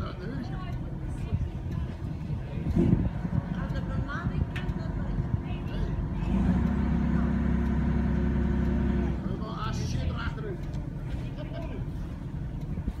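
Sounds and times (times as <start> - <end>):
engine humming: 0.0 - 13.0.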